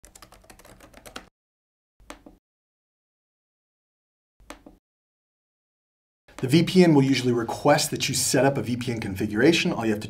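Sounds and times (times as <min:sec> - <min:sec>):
fast typing on keyboard: 0:00.0 - 0:01.3.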